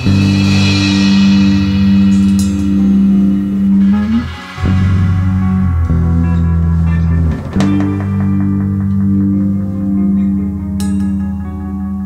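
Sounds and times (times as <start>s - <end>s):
crash cymbal: 0.0s - 11.3s
live rock band: 0.0s - 11.9s.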